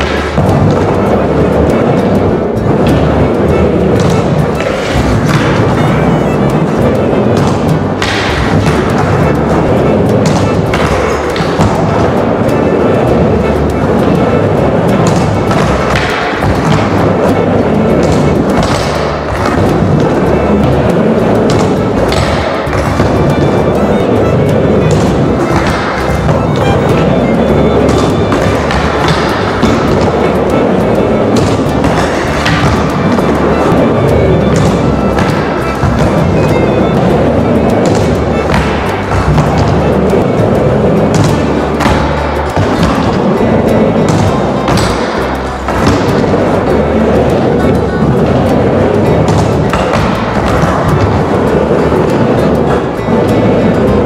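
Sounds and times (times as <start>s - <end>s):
background music: 0.0s - 54.0s
skateboard wheels rolling on ramp: 0.0s - 54.0s.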